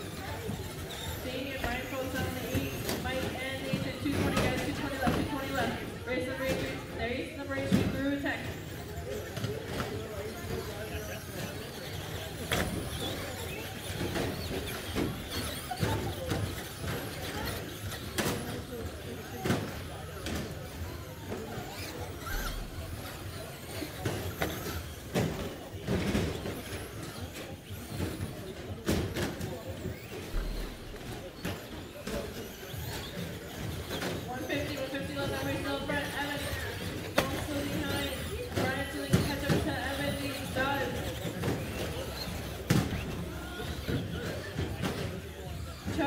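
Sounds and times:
crowd chatter in a hall: 0.0 - 46.0
toy car motors and tyres: 0.0 - 46.0.

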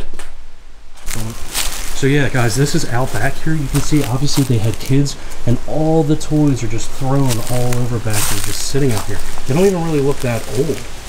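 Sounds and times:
man speaking: 1.0 - 11.0.

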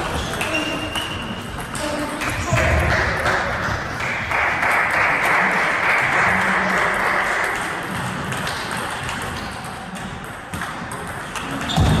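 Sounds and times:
table tennis balls ticking: 0.0 - 3.9, 6.3 - 12.0.

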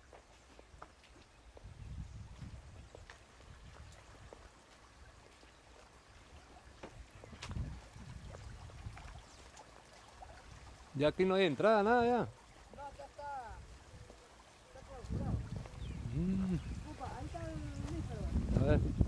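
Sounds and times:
low rumbling on microphone: 1.6 - 2.9, 15.0 - 19.0.

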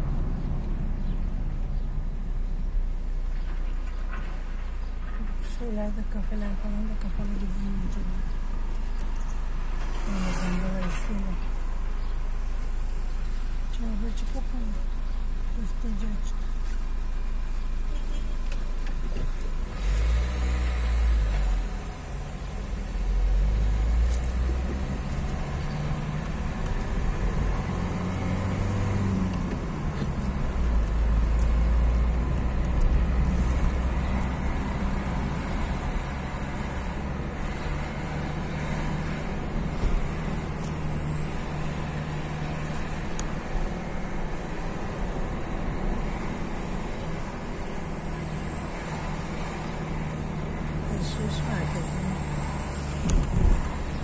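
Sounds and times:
car engine running: 0.0 - 54.0
road rumble: 0.0 - 54.0.

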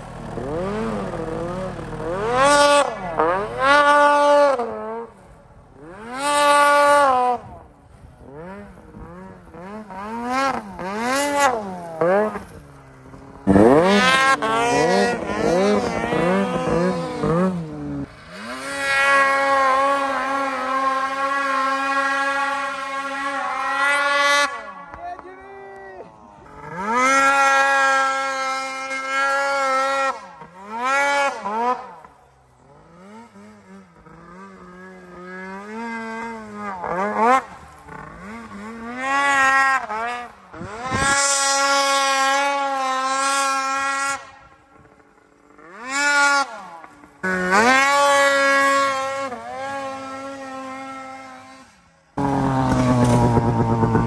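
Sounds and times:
snowmobile engines revving: 0.0 - 54.0.

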